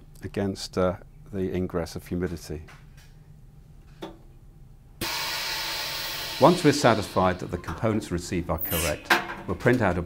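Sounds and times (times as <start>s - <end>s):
vacuum sealer air rushing hiss: 5.0s - 7.5s.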